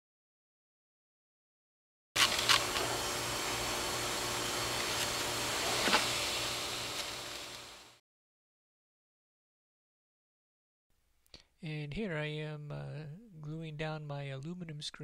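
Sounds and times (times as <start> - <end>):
background hiss: 2.4 - 8.0.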